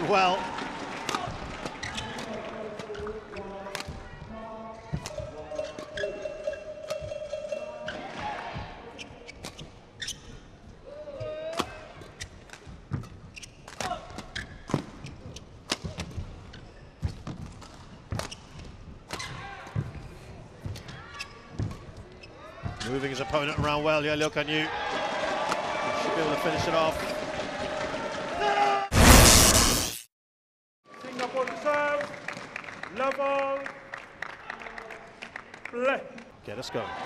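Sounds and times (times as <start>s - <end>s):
shoes squeaking on court: 1.6s - 4.2s, 4.8s - 10.8s, 12.0s - 23.8s.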